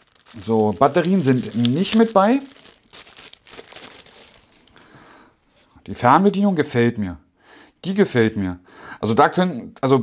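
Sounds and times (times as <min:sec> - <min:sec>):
plastic bag crinkling: 0:00.0 - 0:05.0.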